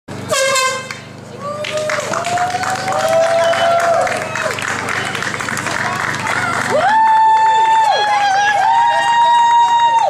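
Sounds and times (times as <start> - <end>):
air horn blast: 0.2 - 1.0.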